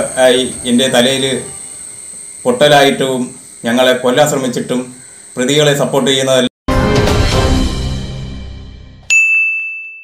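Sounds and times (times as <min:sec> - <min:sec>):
bright chime: 0:09.0 - 0:10.0.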